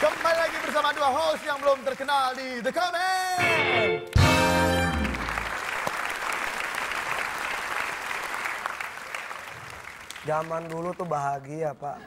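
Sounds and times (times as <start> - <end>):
audience applauding: 0.0 - 11.5.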